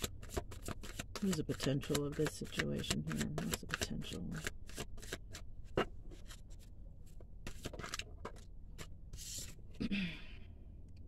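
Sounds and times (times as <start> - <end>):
card sliding rustle: 4.4 - 5.4, 7.5 - 9.6
low hum or breath: 9.8 - 10.8.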